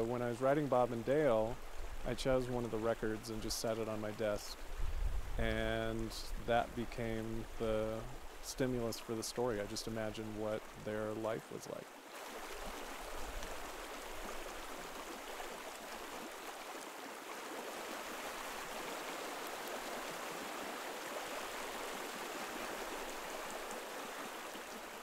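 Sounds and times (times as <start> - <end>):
creek water flowing over stones: 0.0 - 25.0.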